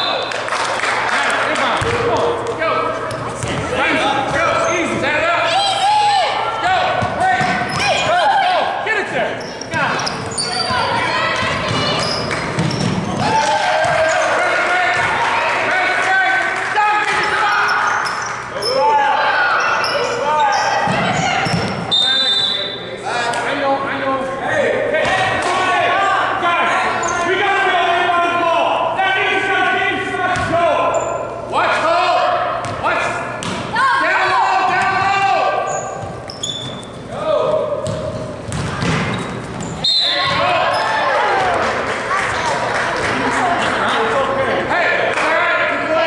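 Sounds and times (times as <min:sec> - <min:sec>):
echoing crowd voices: 0:37.0 - 0:46.0
basketball bouncing on hardwood: 0:37.8 - 0:39.2.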